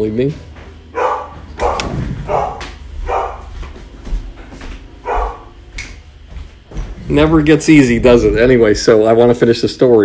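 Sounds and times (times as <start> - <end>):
dog barking: 0.9 - 3.5, 5.0 - 5.5.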